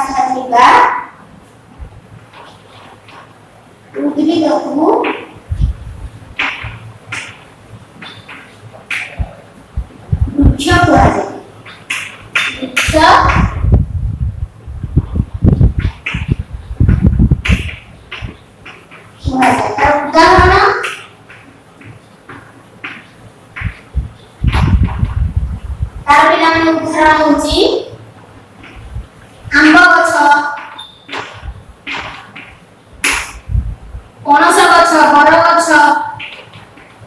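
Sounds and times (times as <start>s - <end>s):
chalk knocking against board: 20.8s - 23.9s.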